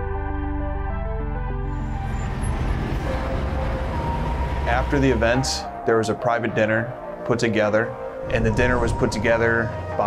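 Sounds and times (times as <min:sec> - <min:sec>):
road traffic rumble: 0:01.6 - 0:10.0.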